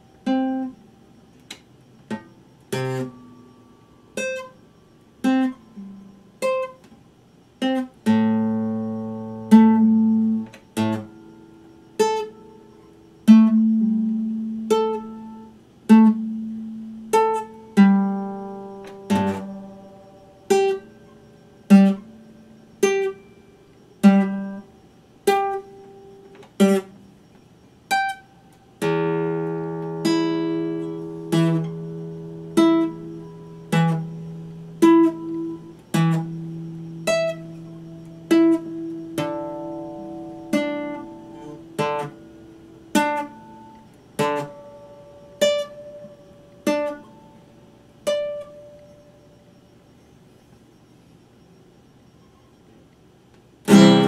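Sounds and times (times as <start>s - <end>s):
fingerstyle classical guitar: 0.0s - 7.0s, 7.6s - 27.1s, 27.9s - 49.4s, 53.6s - 54.0s.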